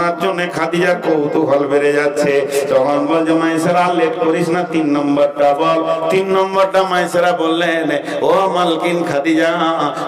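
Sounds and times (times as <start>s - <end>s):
man chanting a sung sermon: 0.0s - 10.0s.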